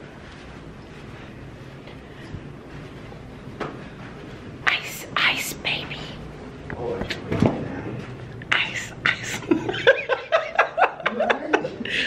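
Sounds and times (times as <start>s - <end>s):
person whispering: 4.6s - 6.2s, 8.6s - 9.4s.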